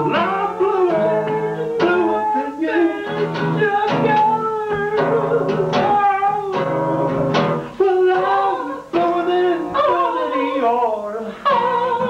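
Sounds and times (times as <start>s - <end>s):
strummed acoustic guitar: 0.0s - 12.0s
two men singing: 0.0s - 12.0s.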